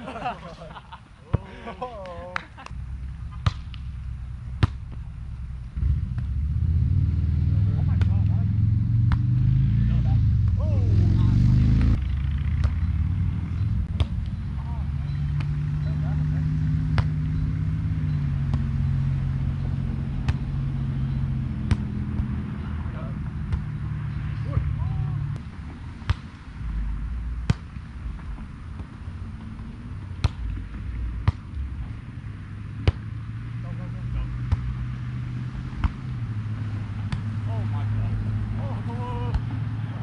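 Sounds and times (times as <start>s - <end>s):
low engine rumble: 0.0s - 40.0s
volleyball being struck: 16.8s - 18.8s.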